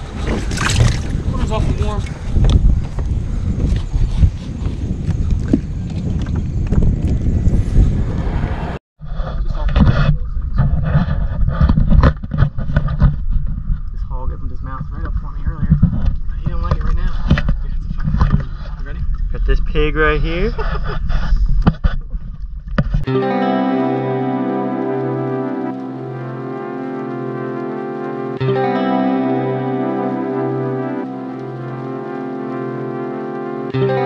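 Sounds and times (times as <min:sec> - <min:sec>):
microphone handling rumble: 0:00.0 - 0:23.1
wind on microphone: 0:00.0 - 0:23.1.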